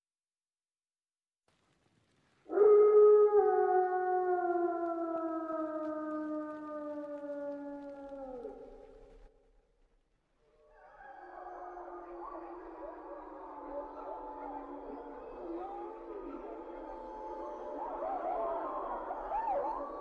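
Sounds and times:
wolves howling in chorus: 2.5 - 9.0, 10.6 - 20.0
wolf howling: 2.5 - 9.3, 10.5 - 20.0.

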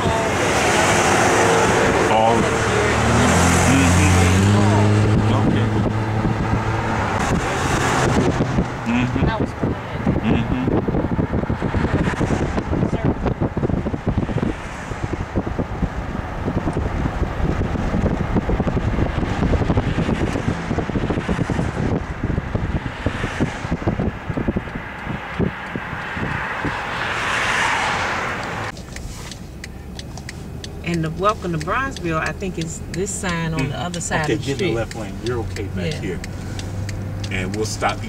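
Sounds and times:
car road noise: 0.0 - 38.0
wind buffeting microphone: 4.3 - 27.2.

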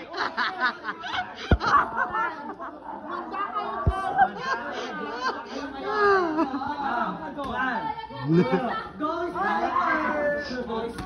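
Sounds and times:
people chattering and laughing: 0.0 - 11.0.

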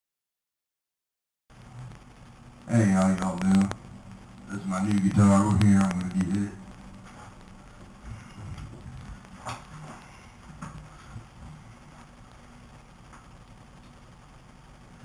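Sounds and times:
faint room hum: 1.5 - 15.0
footsteps: 4.6 - 12.2.

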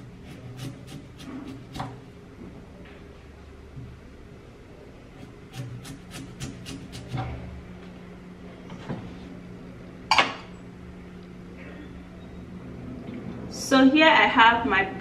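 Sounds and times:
knife slicing beetroot: 0.2 - 2.0, 5.2 - 7.2.

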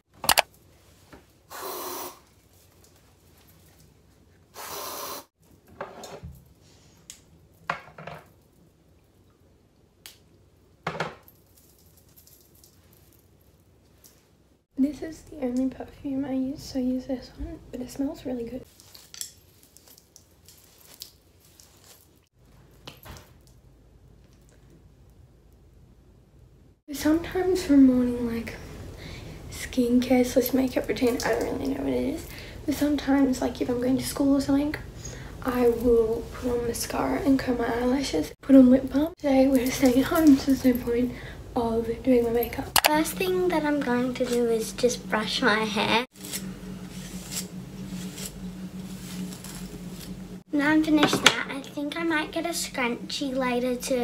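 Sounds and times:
hands and clothing rustling: 18.6 - 22.8
steady low hum: 24.9 - 54.0
hairbrush swishing through hair: 46.1 - 50.5.

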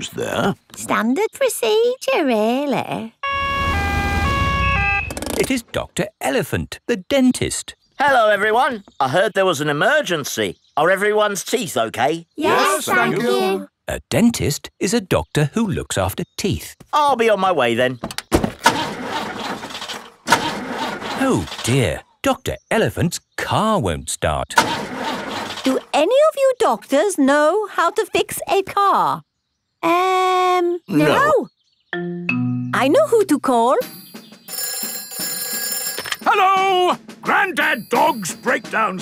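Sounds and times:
two-tone siren: 3.2 - 5.2
cartoon car engine cranking: 3.3 - 5.6, 18.4 - 22.0, 24.5 - 26.0.

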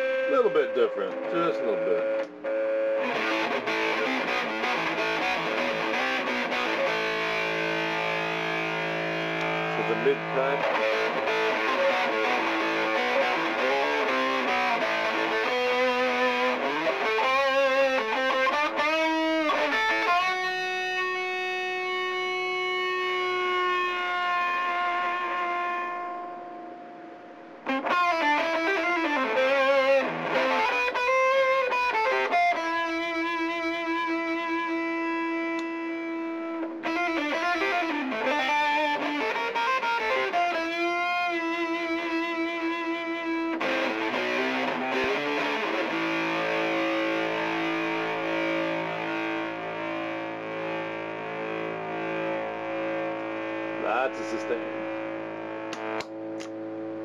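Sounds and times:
fuzz electric guitar lead: 0.0 - 57.0
fuzz guitar chord: 0.0 - 57.0.

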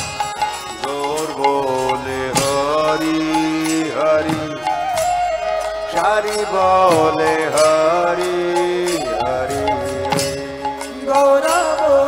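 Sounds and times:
hand cymbal strike: 0.0 - 11.8.

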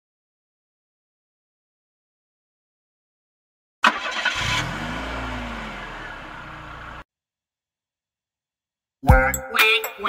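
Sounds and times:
car engine starting and revving: 3.8 - 7.0.

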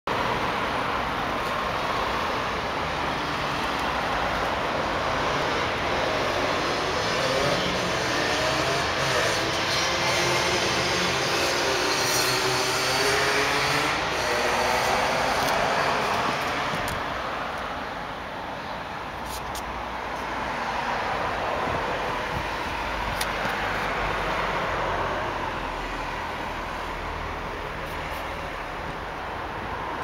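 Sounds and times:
road traffic rushing: 0.1 - 30.0.

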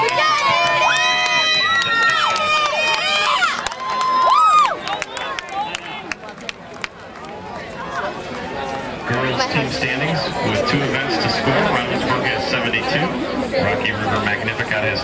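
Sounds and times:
spectators yelling encouragement: 0.0 - 6.1
crowd noise: 0.0 - 15.0.

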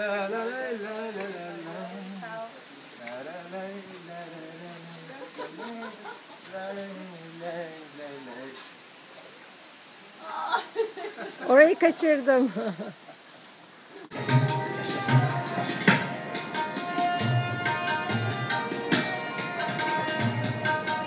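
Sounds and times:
man singing wordless waltz tune: 0.0 - 2.4, 3.0 - 8.6.

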